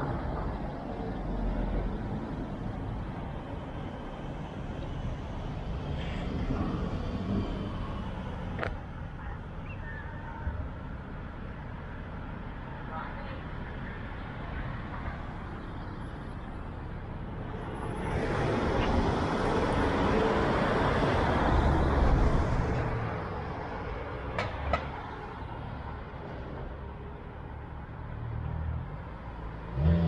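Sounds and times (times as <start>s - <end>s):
passing vehicle tyres and engine: 0.0s - 9.3s, 10.0s - 30.0s
city street traffic rumble: 0.0s - 30.0s.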